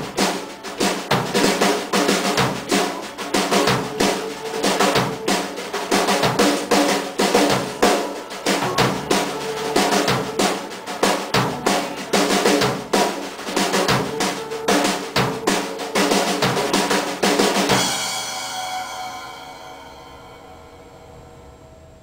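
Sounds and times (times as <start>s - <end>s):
rock drum beat: 0.0s - 19.8s
guitar playing: 0.0s - 21.9s
cymbals ringing: 0.0s - 22.0s.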